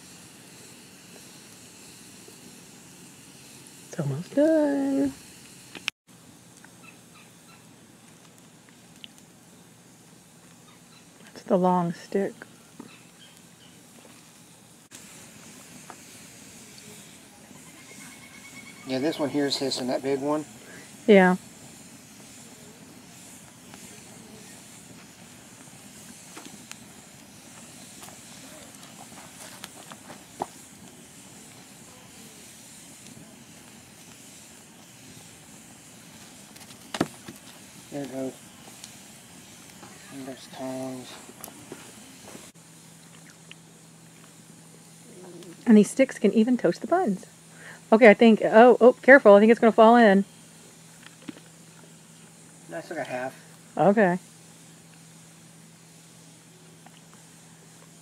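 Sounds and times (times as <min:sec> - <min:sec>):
campfire crackling: 0:00.0 - 0:58.0
low steady hiss: 0:00.0 - 0:58.0.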